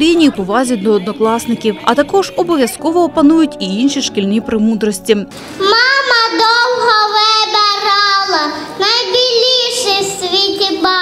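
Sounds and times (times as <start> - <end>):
girl singing into microphone: 5.6 - 11.0.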